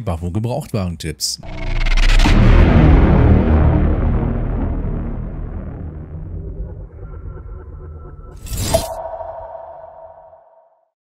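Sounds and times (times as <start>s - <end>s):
low rumble: 1.4s - 10.7s
whoosh ending in a hit: 1.4s - 10.8s
ringing tone: 8.5s - 10.8s.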